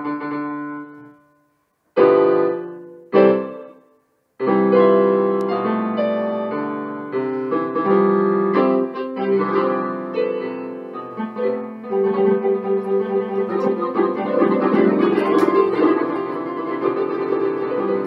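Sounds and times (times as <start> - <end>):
electric piano: 0.0 - 1.4, 2.0 - 18.0.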